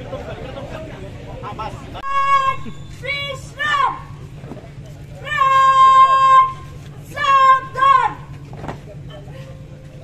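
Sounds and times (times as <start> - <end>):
woman chanting drawn-out syllable: 5.2 - 8.3.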